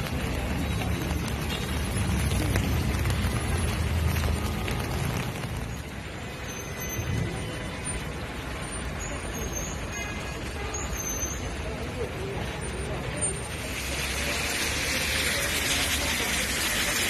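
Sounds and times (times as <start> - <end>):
traffic on wet road: 0.0 - 17.0
hiss: 13.5 - 17.0.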